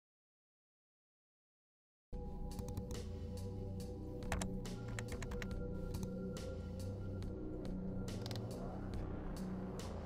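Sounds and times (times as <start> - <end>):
background music with held tones: 2.2 - 10.0
typing on keyboard: 4.2 - 6.2.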